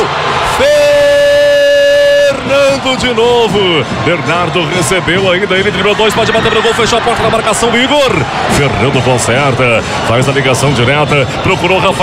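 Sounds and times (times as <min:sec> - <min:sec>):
crowd noise in a gymnasium: 0:00.0 - 0:12.0.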